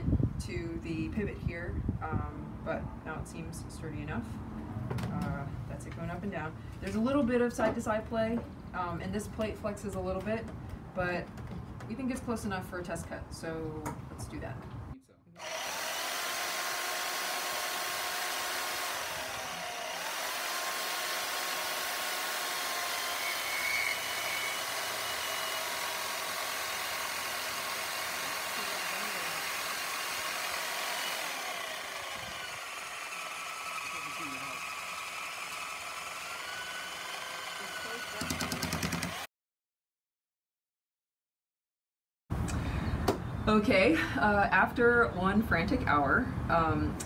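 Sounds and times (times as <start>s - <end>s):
bandsaw cutting metal: 15.4s - 39.3s.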